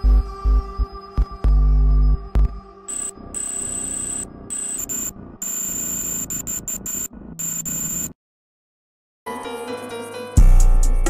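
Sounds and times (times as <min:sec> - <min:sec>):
electronic music with glitch effects: 0:00.0 - 0:07.8
high thin whine: 0:02.9 - 0:07.1.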